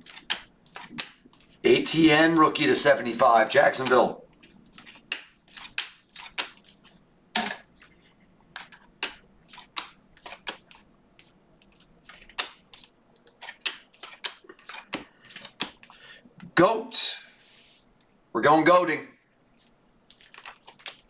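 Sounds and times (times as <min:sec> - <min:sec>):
cards flicking off stack: 0:04.8 - 0:06.7.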